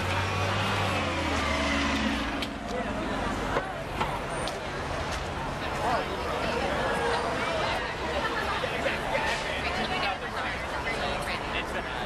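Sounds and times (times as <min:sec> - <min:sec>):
bus driving past: 0:00.0 - 0:10.2
street traffic: 0:00.0 - 0:12.0.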